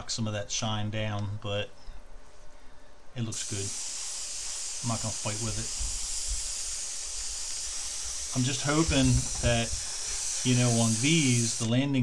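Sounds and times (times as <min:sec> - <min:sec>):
high-pitched hiss: 0:03.1 - 0:12.0.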